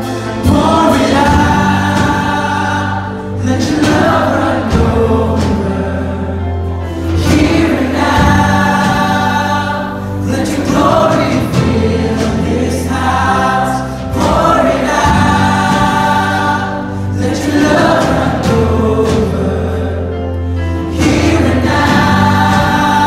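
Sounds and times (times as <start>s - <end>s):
band playing: 0.0s - 23.0s
worship song sung by many voices: 0.0s - 23.0s.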